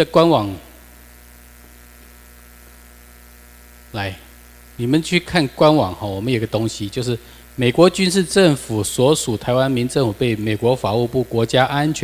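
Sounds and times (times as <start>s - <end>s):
electrical mains hum: 0.0s - 12.0s
faint hiss: 0.0s - 12.0s.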